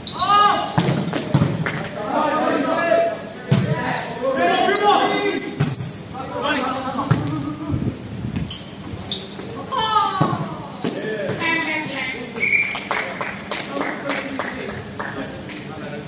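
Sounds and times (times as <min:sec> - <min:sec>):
players shouting: 0:00.1 - 0:00.8, 0:01.9 - 0:05.6.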